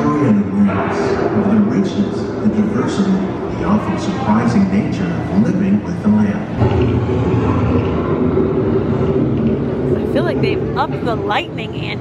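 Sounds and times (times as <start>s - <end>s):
low rumble of indoor ambience: 0.0s - 12.0s.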